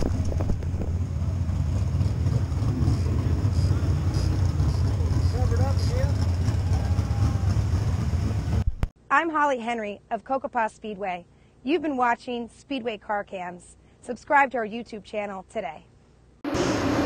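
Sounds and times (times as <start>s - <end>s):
wind on microphone: 0.0s - 1.0s
engine low rumble: 0.0s - 9.0s, 15.4s - 17.0s.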